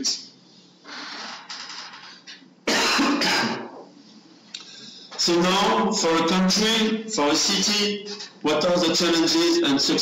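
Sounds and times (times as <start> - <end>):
man clearing his throat: 2.6 - 3.8.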